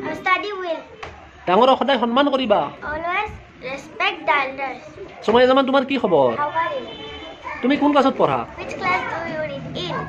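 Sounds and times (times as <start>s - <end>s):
girl speaking: 0.0s - 0.9s, 8.6s - 10.0s.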